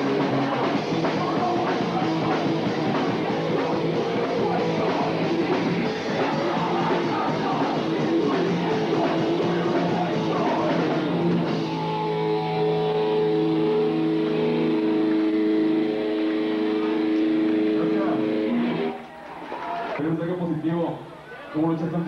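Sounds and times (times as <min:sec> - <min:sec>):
punk band playing live: 0:00.0 - 0:20.0.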